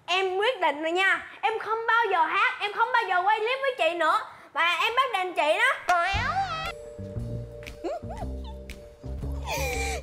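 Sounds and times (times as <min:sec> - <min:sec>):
light comedic background music: 0:05.9 - 0:10.0
woman squealing with glee: 0:06.1 - 0:06.7.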